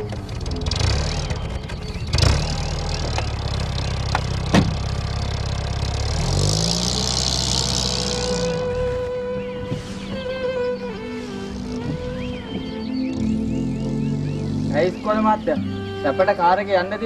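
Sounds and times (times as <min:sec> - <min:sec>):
car engine revving: 0:00.0 - 0:17.0
car door shutting: 0:04.1 - 0:05.0
sharp knock: 0:04.5 - 0:04.8.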